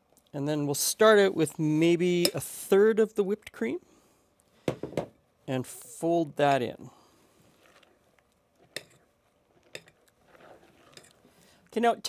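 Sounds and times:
spatula folding cream in bowl: 0:07.3 - 0:11.4.

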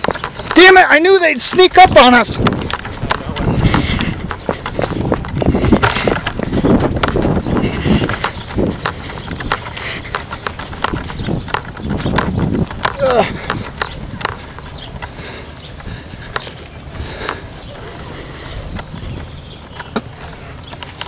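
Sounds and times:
hurried footsteps on path: 0:00.0 - 0:21.0
camera handling rumble: 0:02.3 - 0:17.4.

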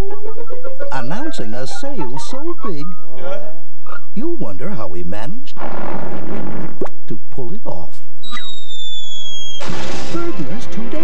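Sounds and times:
noisy crash: 0:05.6 - 0:07.0, 0:08.5 - 0:11.0
falling whistle: 0:08.2 - 0:09.7.

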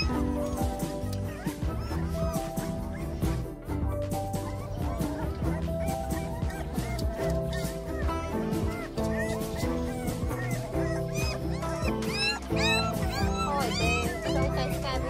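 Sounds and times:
background music with held chords: 0:00.0 - 0:15.0
puppy whining and yelping: 0:00.0 - 0:15.0.

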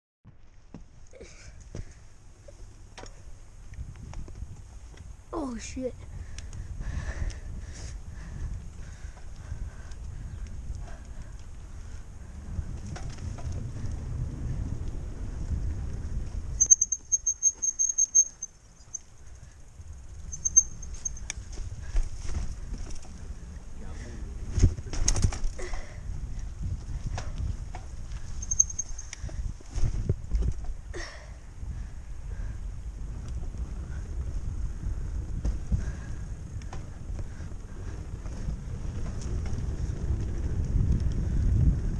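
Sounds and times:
bike knocking and rattling: 0:00.3 - 0:05.2, 0:06.2 - 0:41.9
bike tyre noise: 0:00.3 - 0:41.9
wind rumble on microphone: 0:00.3 - 0:41.9
short high-pitched squeals: 0:16.6 - 0:19.1, 0:20.3 - 0:21.3, 0:28.4 - 0:29.1.

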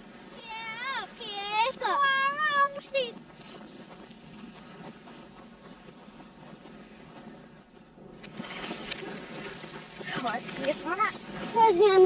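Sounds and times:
outdoor ambience hiss: 0:00.0 - 0:12.0
reversed child shouting: 0:00.4 - 0:03.2.

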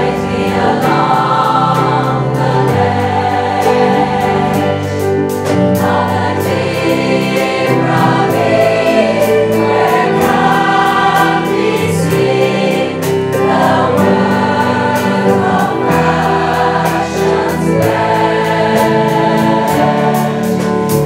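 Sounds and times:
choir singing harmonies: 0:00.0 - 0:21.0
keyboard: 0:00.0 - 0:21.0.

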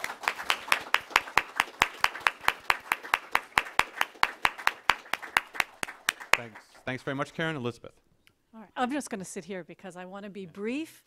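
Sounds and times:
audience applause: 0:00.0 - 0:06.8
sharp evenly spaced claps: 0:00.0 - 0:06.9.

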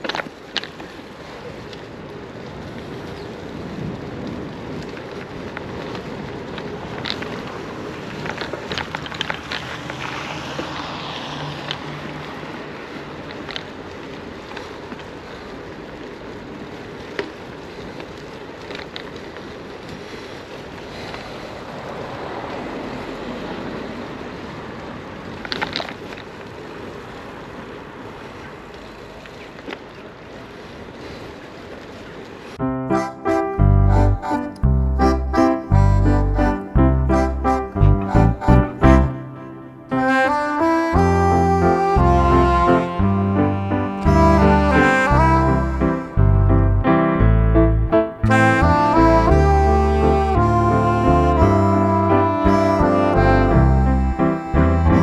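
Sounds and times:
wind on microphone: 0:00.0 - 0:27.2, 0:30.3 - 0:39.2, 0:39.9 - 0:55.0
tyre hiss on wet street: 0:00.0 - 0:32.6, 0:35.4 - 0:46.4, 0:48.3 - 0:55.0
bicycle clicks and rattles: 0:04.2 - 0:10.1, 0:25.4 - 0:26.4.

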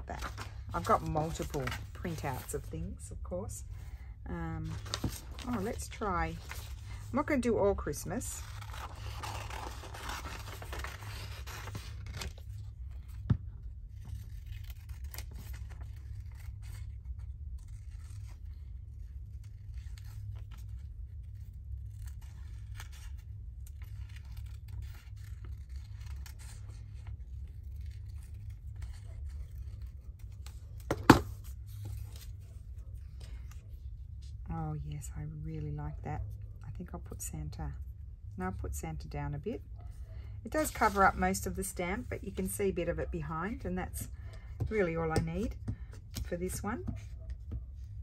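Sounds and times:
faint low hum: 0:00.0 - 0:48.0
paper rustling: 0:04.6 - 0:23.2.

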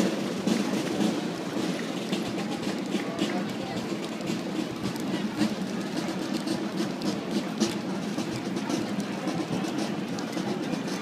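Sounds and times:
crowd murmur: 0:00.0 - 0:11.0
wheels rolling on asphalt: 0:00.0 - 0:11.0.

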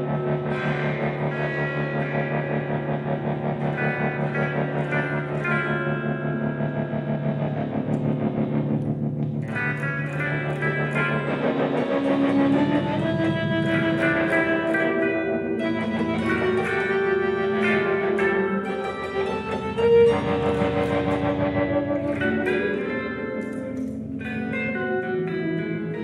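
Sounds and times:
electric guitars playing: 0:00.0 - 0:26.0.

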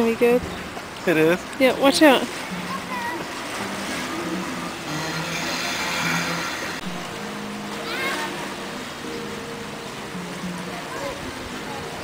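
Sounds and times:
water splashing into pool: 0:00.0 - 0:09.1
water rushing down slide: 0:01.8 - 0:09.1.

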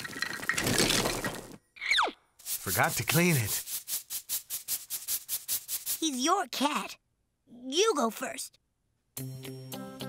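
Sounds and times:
whisk broom sweeping: 0:02.4 - 0:06.2.

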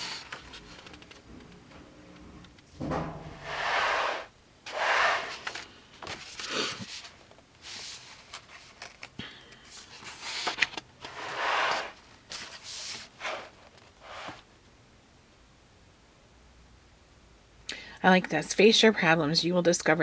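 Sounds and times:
paper pages turning: 0:00.0 - 0:01.2, 0:04.7 - 0:14.4.

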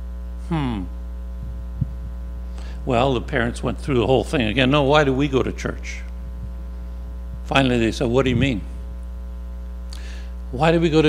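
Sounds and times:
electrical mains hum: 0:00.0 - 0:11.0
man speaking: 0:00.5 - 0:00.9, 0:02.8 - 0:06.1, 0:07.5 - 0:08.7, 0:10.6 - 0:11.0.

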